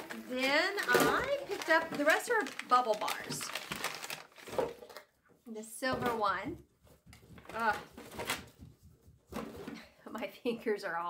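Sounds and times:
rustling and handling noises: 0:00.0 - 0:10.5.

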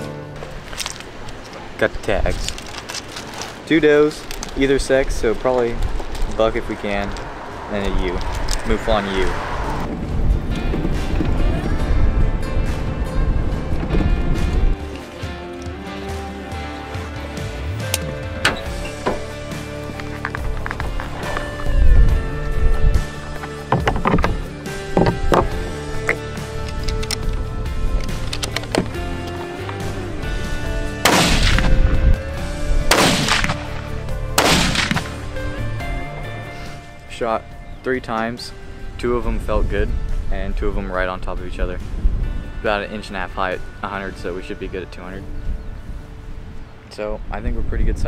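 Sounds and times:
background music: 0:00.0 - 0:48.0
rifle shots ringing out: 0:31.0 - 0:31.7, 0:32.9 - 0:33.7, 0:34.4 - 0:35.2.

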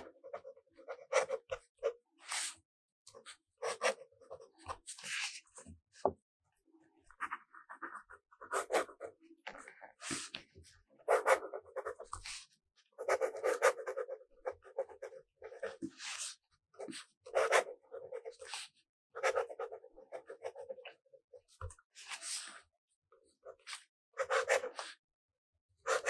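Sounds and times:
pen scratching on paper: 0:00.0 - 0:05.7, 0:07.1 - 0:10.4, 0:11.0 - 0:12.4, 0:13.0 - 0:21.5, 0:23.4 - 0:25.0.

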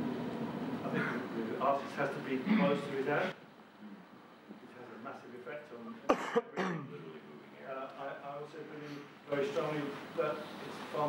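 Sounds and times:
man talking: 0:00.8 - 0:11.0
person coughing: 0:00.9 - 0:01.2, 0:06.1 - 0:06.9.

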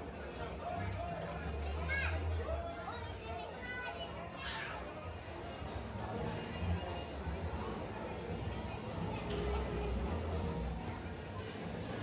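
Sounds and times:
diners chattering: 0:00.0 - 0:12.0
child's high voice: 0:02.9 - 0:04.9.

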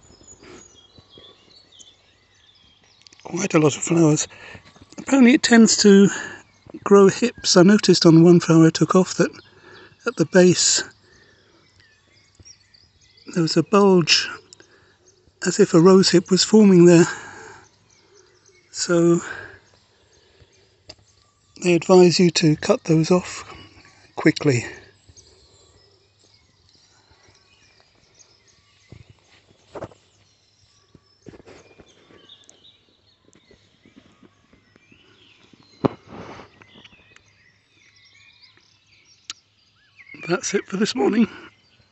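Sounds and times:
faint distant bird chirps: 0:00.0 - 0:41.9
soft thuds: 0:35.8 - 0:36.5.

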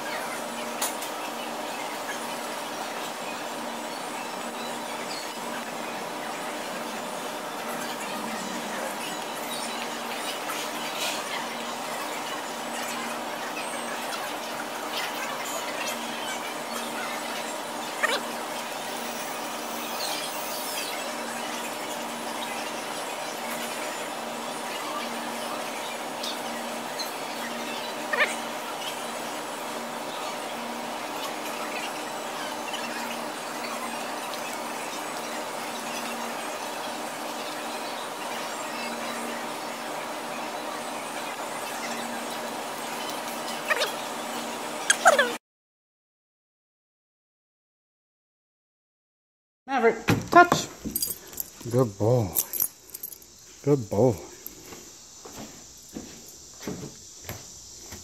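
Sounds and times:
store room hum: 0:00.0 - 0:45.4, 0:49.7 - 0:58.0.

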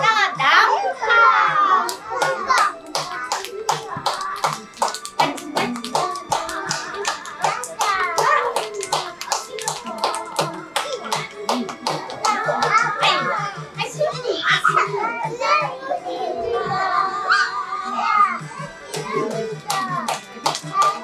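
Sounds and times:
children's song: 0:00.0 - 0:21.0
hands clapping in rhythm: 0:01.8 - 0:13.5, 0:18.8 - 0:21.0
young children's voices: 0:12.2 - 0:20.1.

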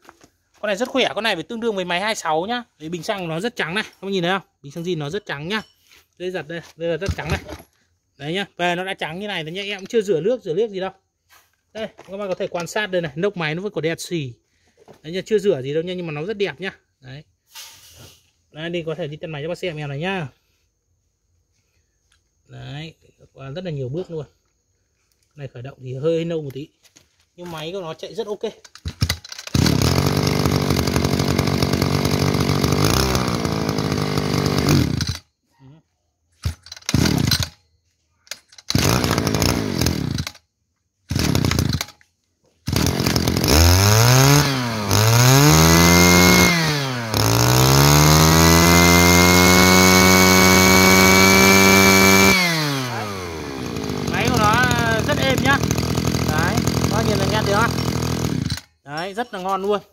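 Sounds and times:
brush cutter engine revving: 0:28.9 - 0:35.3, 0:36.4 - 0:37.6, 0:38.6 - 0:40.4, 0:41.1 - 0:42.0, 0:42.6 - 0:58.7.

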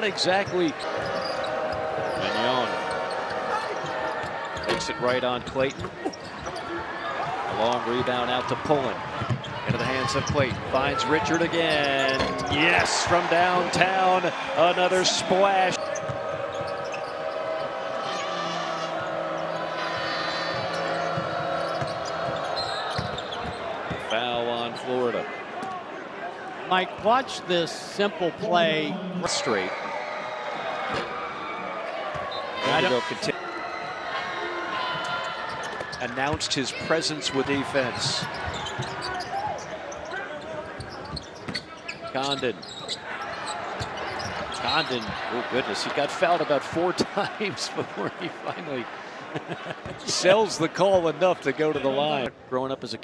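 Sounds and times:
arena crowd noise: 0:00.0 - 0:53.0
basketball bouncing on court: 0:09.1 - 0:10.7, 0:20.5 - 0:24.1
person speaking: 0:28.4 - 0:29.6.

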